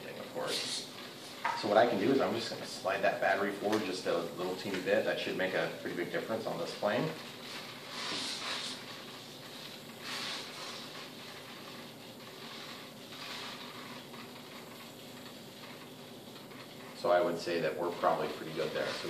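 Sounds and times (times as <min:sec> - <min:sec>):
soft rustles of handling foam: 0:00.0 - 0:19.0.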